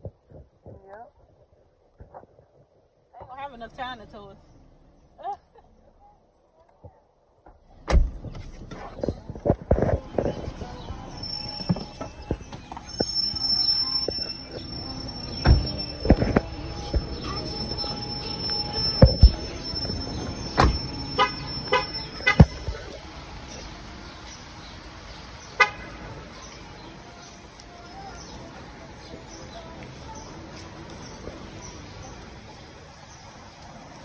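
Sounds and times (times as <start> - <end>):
street noise: 0.0 - 34.0
short beeps: 11.0 - 22.6.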